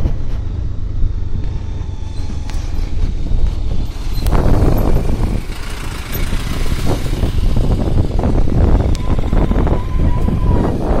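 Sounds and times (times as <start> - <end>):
motorcycle running: 0.0 - 11.0
wind rumble on microphone: 0.0 - 11.0.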